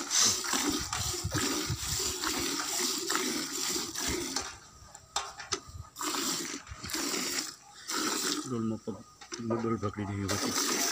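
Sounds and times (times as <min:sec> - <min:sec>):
milk squirting into a steel pail: 0:00.0 - 0:04.5, 0:06.0 - 0:08.5, 0:10.3 - 0:10.9.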